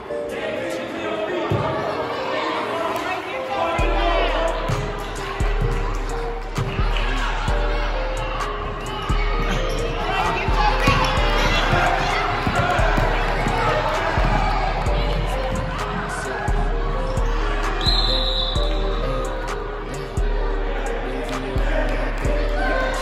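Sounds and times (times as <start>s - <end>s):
voices in a hall: 0.0s - 23.0s.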